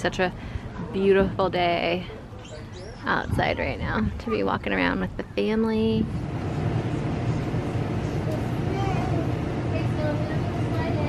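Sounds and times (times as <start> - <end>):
faint distant voices: 0.0 - 11.0
low rumbling noise: 3.0 - 11.0.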